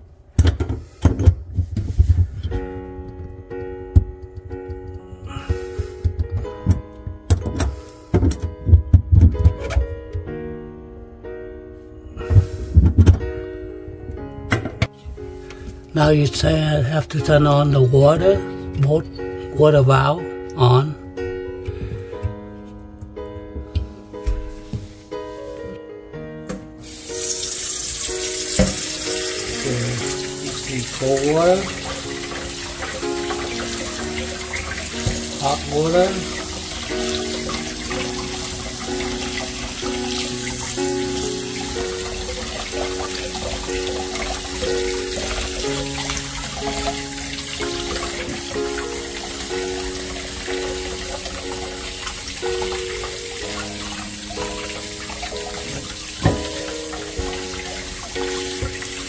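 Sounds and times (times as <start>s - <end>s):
background music: 1.9s - 59.0s
water running into a steel sink: 26.8s - 59.0s.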